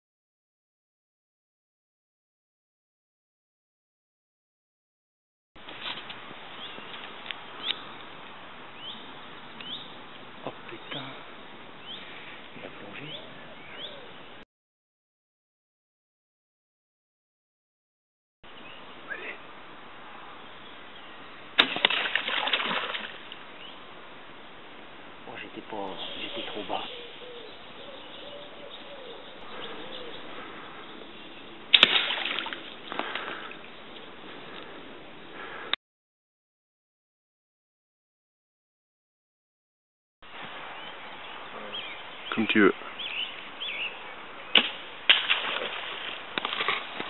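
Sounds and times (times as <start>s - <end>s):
animal splashing into water: 21.6s - 23.4s, 31.7s - 33.6s, 44.6s - 47.0s
bow shot sharp cracks: 31.7s - 32.6s, 44.5s - 45.7s.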